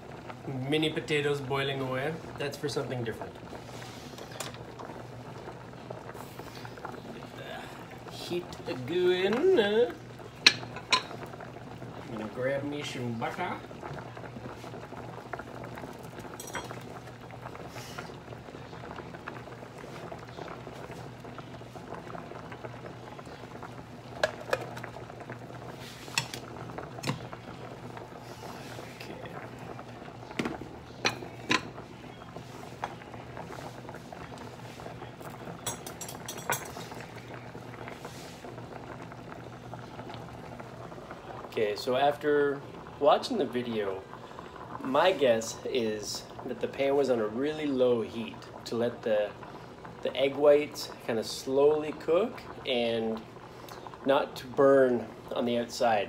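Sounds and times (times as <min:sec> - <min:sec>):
pot boiling and bubbling: 0:00.0 - 0:56.0
utensils clinking on pans: 0:16.4 - 0:16.8, 0:35.6 - 0:37.0.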